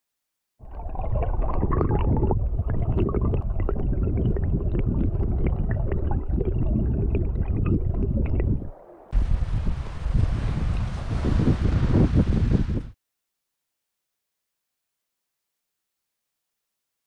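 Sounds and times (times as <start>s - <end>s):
bubbles and pebbles clicking: 0.6s - 8.7s
muffled underwater stream rushing: 0.6s - 13.0s
wind on microphone: 1.0s - 13.0s.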